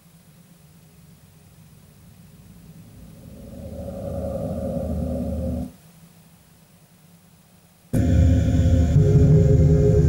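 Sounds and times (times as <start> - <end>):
steady drone: 2.3 - 5.8, 8.0 - 10.0.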